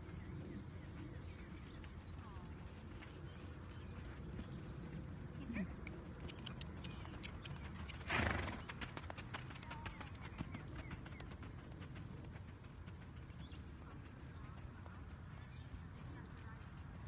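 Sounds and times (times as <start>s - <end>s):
horse hoofbeats on sand: 0.0s - 17.0s.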